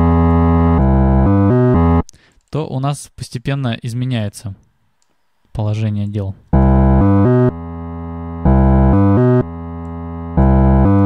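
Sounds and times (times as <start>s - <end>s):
looped low synth notes: 0.0s - 2.0s, 6.5s - 11.0s.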